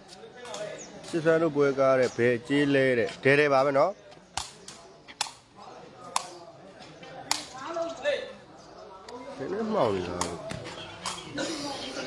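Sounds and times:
faint chatter of onlookers: 0.0 - 12.0
sharp taps of ball being struck: 6.1 - 6.4.

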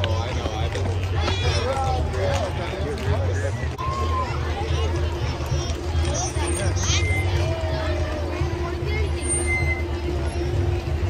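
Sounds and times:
crowd voices: 0.0 - 11.0
vehicle engine low rumble: 0.0 - 11.0.

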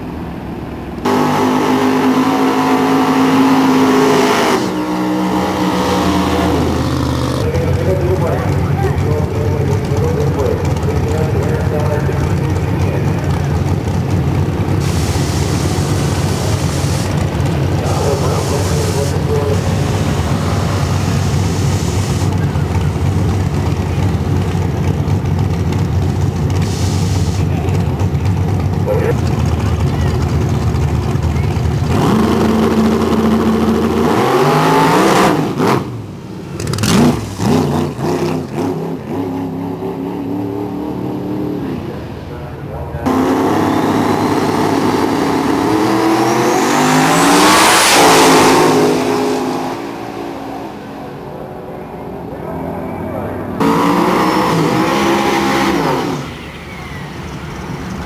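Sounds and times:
car burnout: 0.0 - 58.0
drag racing engines revving: 0.0 - 58.0.

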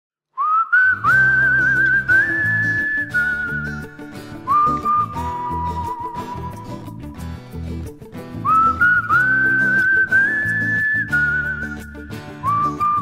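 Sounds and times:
whistled melody: 0.4 - 13.0
strummed acoustic guitar: 0.9 - 13.0.

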